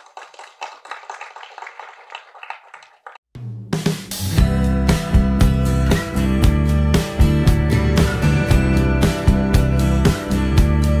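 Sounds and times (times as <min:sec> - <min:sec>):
audience applauding: 0:00.0 - 0:03.2.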